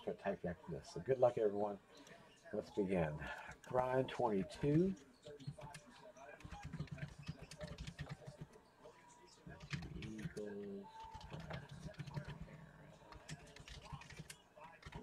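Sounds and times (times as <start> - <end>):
computer keyboard typing: 5.4 - 8.5, 9.5 - 15.0.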